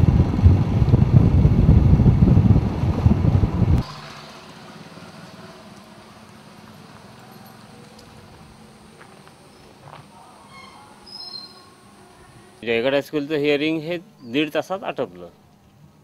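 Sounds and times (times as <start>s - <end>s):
wind buffeting microphone: 0.0s - 3.9s
loud low rumble: 0.0s - 4.4s
faint outdoor background: 0.0s - 16.0s.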